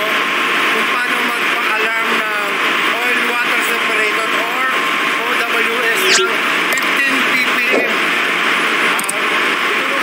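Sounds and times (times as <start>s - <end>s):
engine-room machinery drone: 0.0s - 10.0s.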